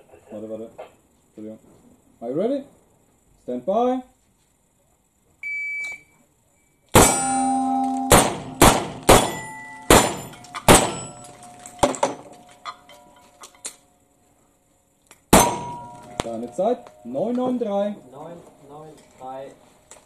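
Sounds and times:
steel plate clanging: 7.0s - 13.8s, 15.3s - 19.4s
shot timer beep: 7.1s - 8.6s.

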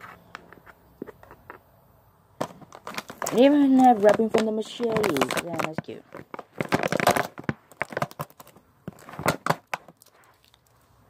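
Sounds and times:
crinkly packaging crackling: 2.4s - 11.0s.

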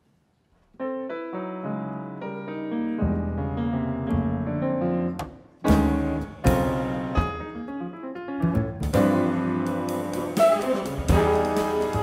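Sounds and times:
jazz piano with bass and drums: 0.8s - 12.0s.

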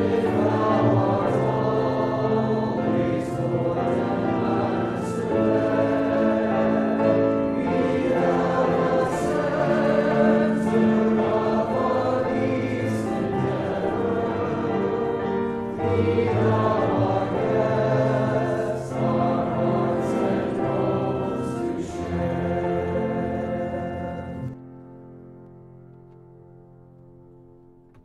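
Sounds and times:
group singing a hymn: 0.0s - 24.6s.

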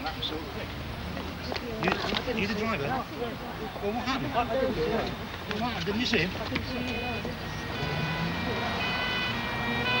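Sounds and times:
ambulance two-tone siren: 6.8s - 10.0s.

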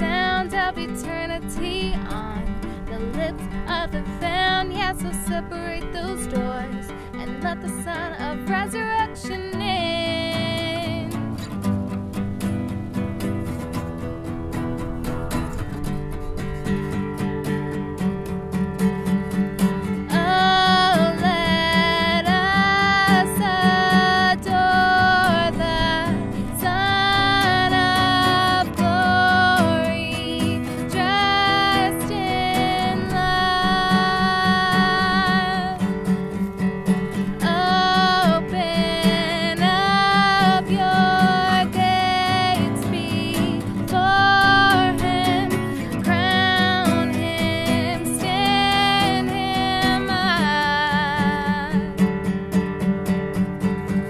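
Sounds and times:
woman singing: 0.0s - 12.6s, 19.6s - 52.7s
acoustic guitar strumming: 0.0s - 54.0s.

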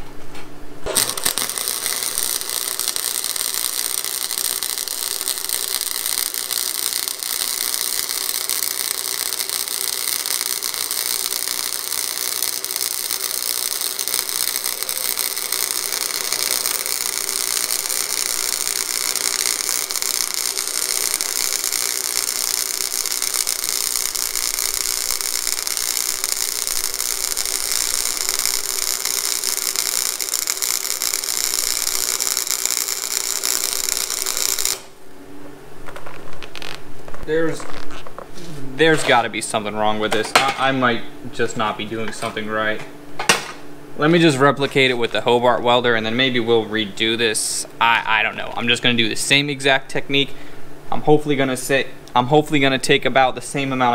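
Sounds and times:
welder arc crackling and hissing: 0.8s - 53.9s.

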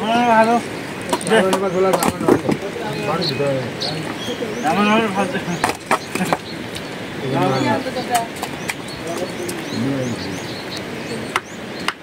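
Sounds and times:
small birds chirping: 0.0s - 12.0s
stones knocking together: 1.1s - 2.7s, 5.6s - 6.5s.

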